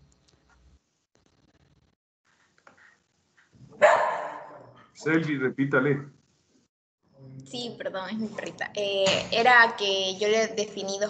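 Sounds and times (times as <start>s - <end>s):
dog barking: 3.7s - 4.8s.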